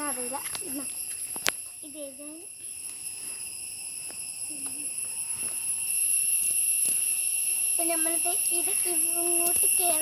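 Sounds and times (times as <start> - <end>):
high-pitched ringing drone: 0.0 - 10.0.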